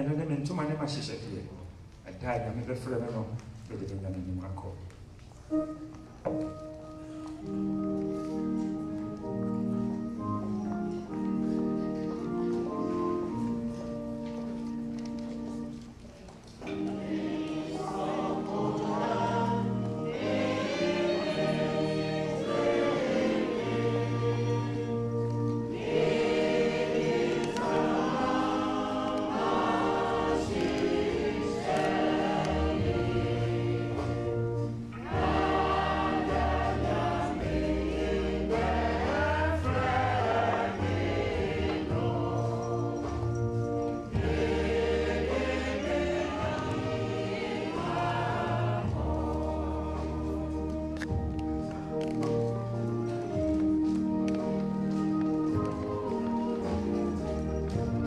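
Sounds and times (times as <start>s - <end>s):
choir singing a slow hymn: 16.6s - 52.1s, 55.2s - 58.0s.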